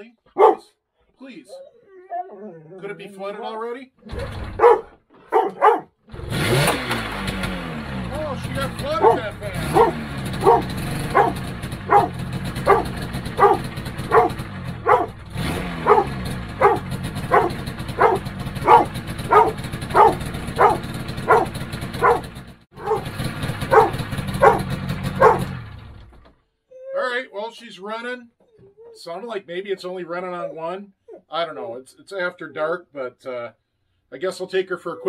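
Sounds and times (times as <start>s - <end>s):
dog barking: 0.4s - 0.7s, 4.6s - 5.9s, 8.9s - 15.2s, 15.8s - 25.5s
snowmobile engine idling: 8.0s - 26.0s.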